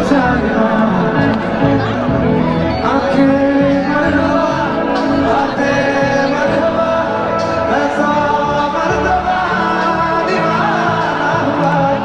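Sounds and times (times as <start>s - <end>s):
live band playing chords: 0.0s - 12.0s
singer holding long notes: 0.0s - 12.0s.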